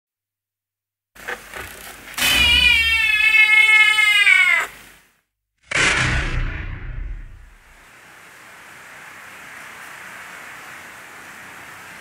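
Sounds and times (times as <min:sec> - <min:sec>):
cat yowling: 0:02.2 - 0:04.8.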